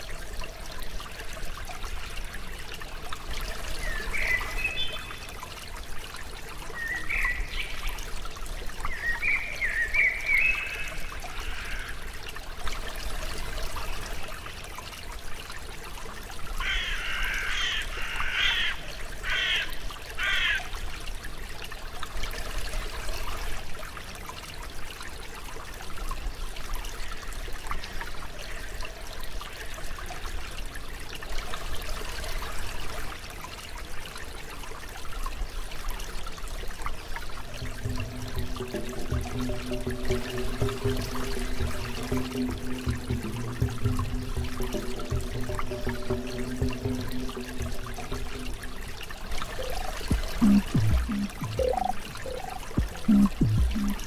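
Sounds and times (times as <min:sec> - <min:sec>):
water trickling: 0:00.0 - 0:54.0.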